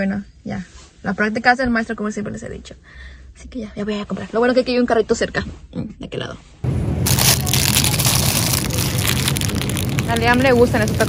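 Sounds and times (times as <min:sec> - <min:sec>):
plastic snack bags crinkling: 0:07.1 - 0:11.0.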